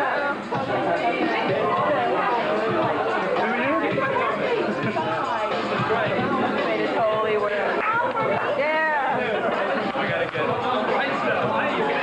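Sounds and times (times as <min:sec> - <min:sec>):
overlapping voices: 0:00.0 - 0:12.0.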